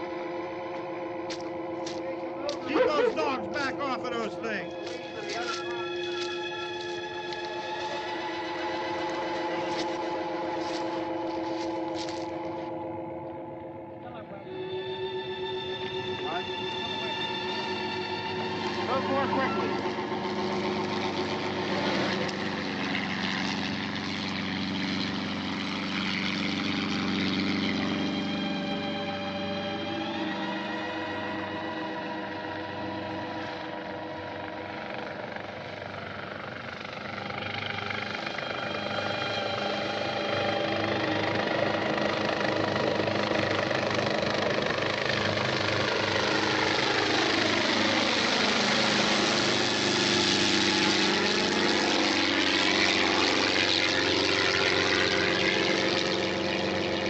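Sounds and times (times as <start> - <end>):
film score of held tones: 0.0 - 57.0
helicopter drone: 0.0 - 57.0.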